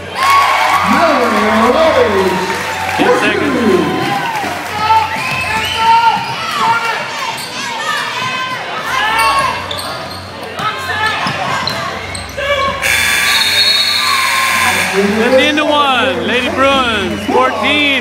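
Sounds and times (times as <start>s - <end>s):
scoreboard buzzer: 12.8s - 16.0s.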